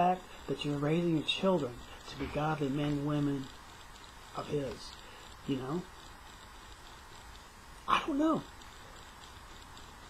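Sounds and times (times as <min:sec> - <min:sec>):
man talking: 0:00.0 - 0:03.5, 0:04.4 - 0:05.9, 0:07.9 - 0:08.5
faint background noise: 0:00.0 - 0:10.0.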